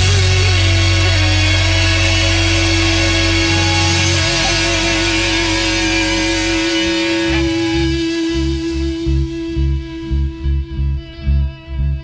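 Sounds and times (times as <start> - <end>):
rock band sustained chord: 0.0 - 12.0.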